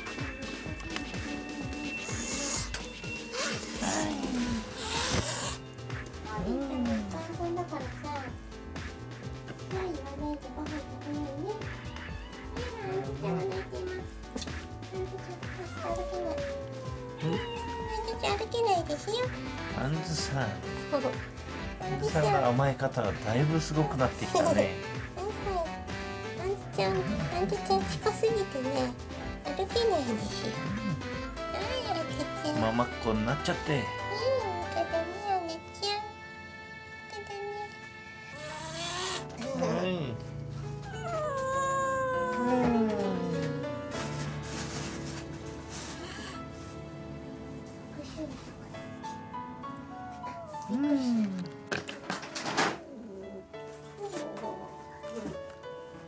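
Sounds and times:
cat meowing: 11.8 - 13.8, 15.4 - 18.5, 38.3 - 39.7, 40.8 - 43.8, 49.9 - 51.5
person murmuring: 12.8 - 13.9, 30.4 - 31.2, 50.6 - 51.6.

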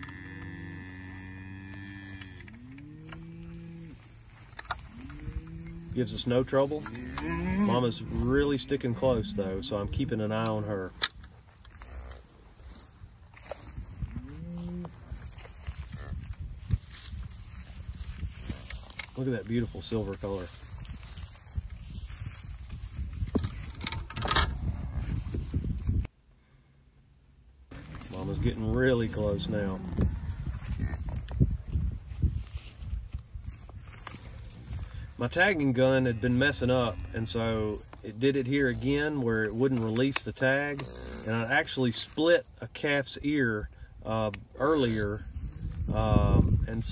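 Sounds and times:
cattle mooing: 0.0 - 6.1, 6.8 - 9.8, 14.2 - 15.0, 27.7 - 30.4, 40.7 - 41.5
rustling handling noise: 0.0 - 26.1, 27.7 - 40.7.

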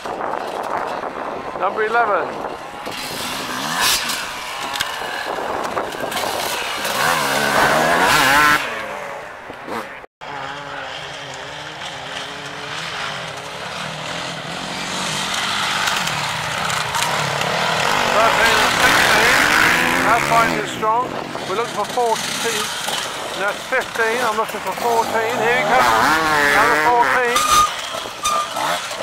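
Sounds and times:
dirt bike engines revving: 0.0 - 29.0.

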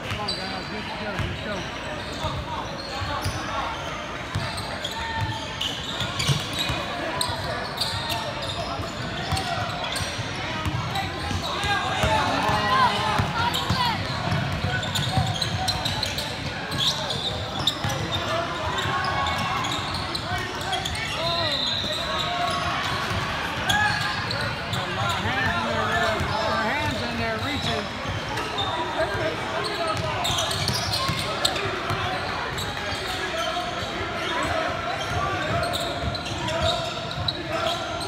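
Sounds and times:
shouts and chatter: 0.0 - 38.0.

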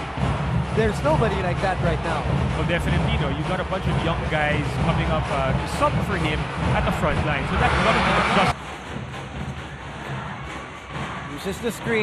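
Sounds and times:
crowd noise: 0.0 - 12.0
music playing: 0.0 - 12.0.

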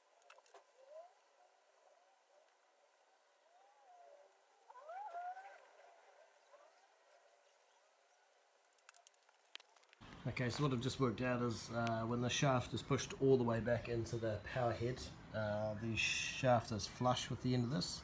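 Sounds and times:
faint bird calls: 0.0 - 9.1.

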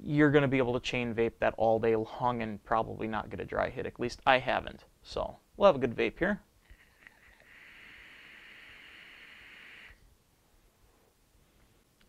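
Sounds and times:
vape draw hiss: 6.7 - 10.0.

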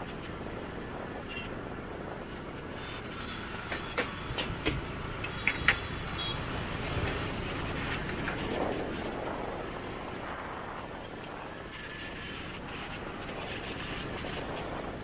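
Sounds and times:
motorbikes and scooters running: 0.0 - 15.0.

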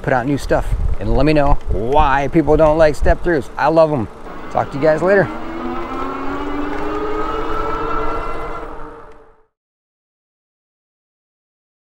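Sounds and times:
wind rumble on microphone: 0.3 - 3.4
electric bike motor whine: 0.5 - 9.5.

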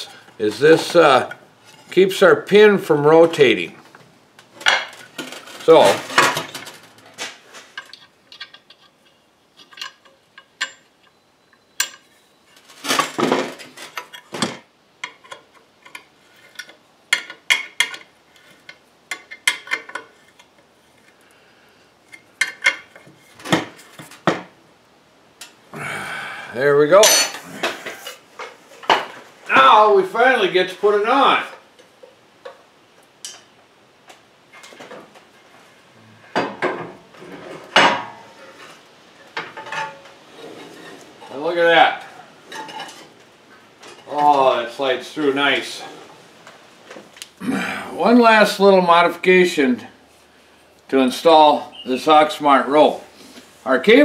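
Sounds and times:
metal parts clinking and clanking: 7.7 - 11.2, 11.8 - 14.4, 15.0 - 20.5, 22.2 - 23.5.

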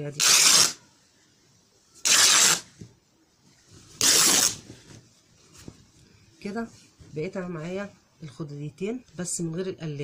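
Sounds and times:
fabric tearing: 0.2 - 0.8, 2.0 - 2.7, 4.0 - 4.6.

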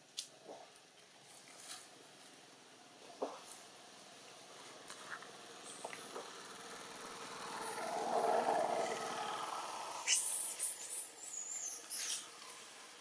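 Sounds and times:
rough low sound: 4.3 - 11.1
monkeys squealing shrilly: 10.0 - 12.2.

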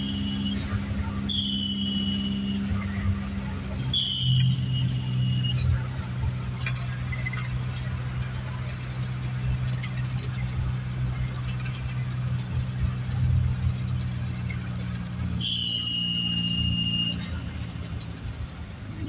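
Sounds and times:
high steady squeal: 0.0 - 8.0, 15.3 - 18.3
minibus engine and road noise: 0.0 - 19.0.

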